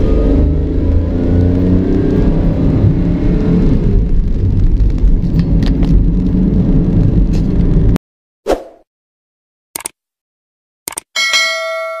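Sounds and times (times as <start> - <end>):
mouse double click: 9.8 - 10.0, 10.9 - 11.1
bright bell ding: 11.2 - 12.0.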